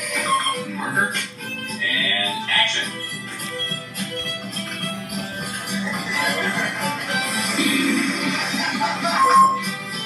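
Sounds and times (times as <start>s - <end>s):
film music from television: 0.0s - 10.0s.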